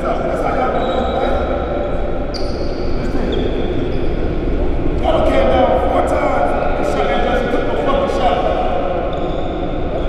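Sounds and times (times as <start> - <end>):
man talking in echoing room: 0.0 - 2.1, 4.7 - 9.1.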